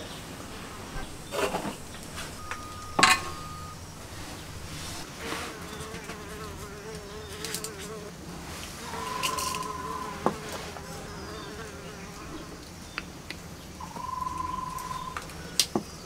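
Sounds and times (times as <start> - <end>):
insect buzzing: 0.1 - 8.2, 8.8 - 12.5
steady high tone: 0.5 - 5.1
sharp clink: 0.8 - 5.0.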